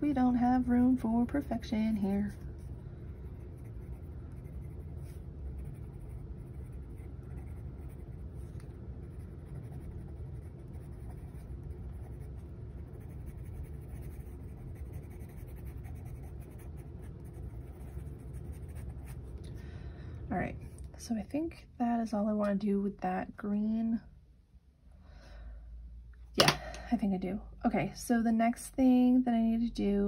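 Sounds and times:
pencil scratching on paper: 3.2s - 19.2s.

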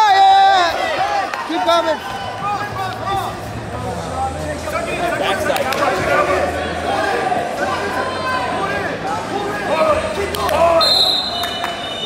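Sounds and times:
voices shouting in echoing hall: 0.0s - 12.0s.

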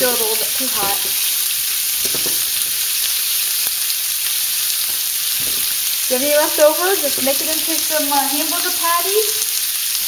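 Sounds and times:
beef sizzling in frying pan: 0.0s - 10.0s.

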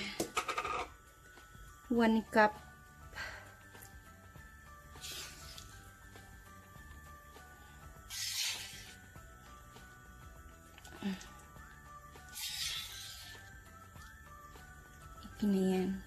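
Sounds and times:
faint music: 0.0s - 16.0s.

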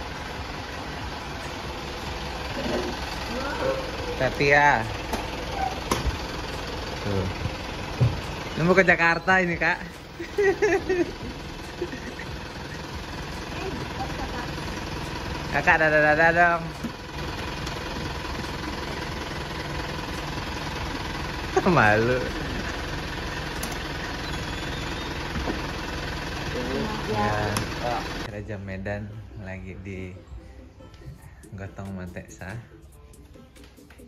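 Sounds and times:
minibus engine idling: 0.0s - 34.0s.

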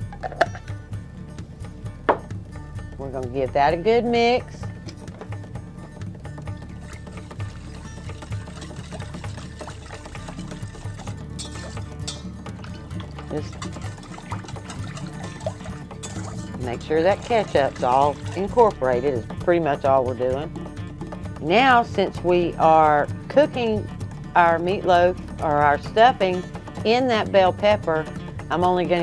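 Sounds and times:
background music with steady beat: 0.0s - 29.0s
whisk sloshing sauce: 6.7s - 19.4s
whisk wires clicking on bowl: 6.9s - 19.2s.

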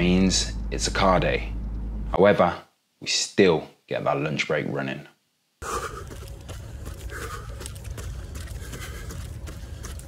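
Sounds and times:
man breathing: 5.6s - 10.0s.

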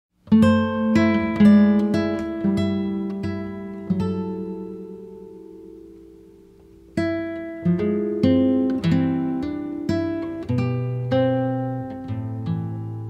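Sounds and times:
acoustic guitar plucked notes: 0.2s - 13.0s.

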